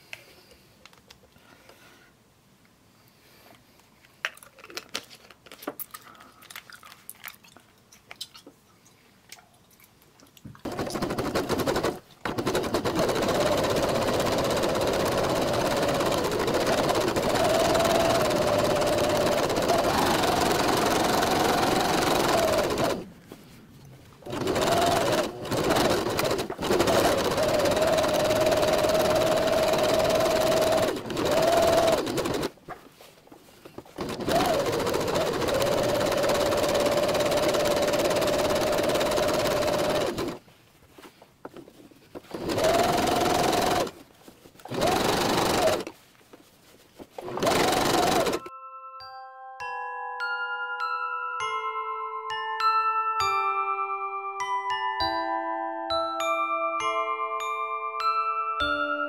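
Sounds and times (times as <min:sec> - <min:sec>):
sewing machine stitching: 0:10.6 - 0:23.1, 0:24.2 - 0:32.6, 0:33.9 - 0:40.4, 0:42.2 - 0:44.0, 0:44.6 - 0:45.9, 0:47.2 - 0:48.5.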